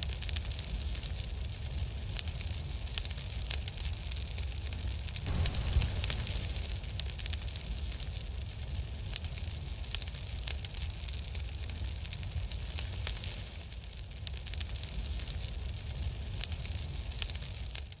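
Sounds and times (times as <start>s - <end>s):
fire crackles: 0.0s - 18.0s
fire hissing: 0.0s - 18.0s
low rumble: 5.2s - 10.0s.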